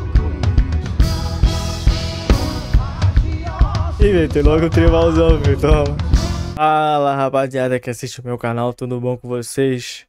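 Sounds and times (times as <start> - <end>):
band music: 0.0 - 6.6
drum kit groove: 0.0 - 6.6.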